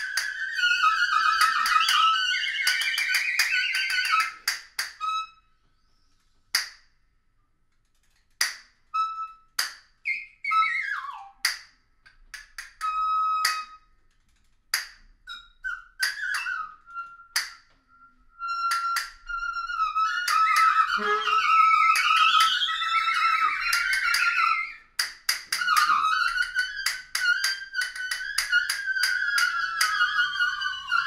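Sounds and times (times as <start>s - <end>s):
woodwind trio improvising: 0.0s - 6.0s, 15.3s - 31.0s.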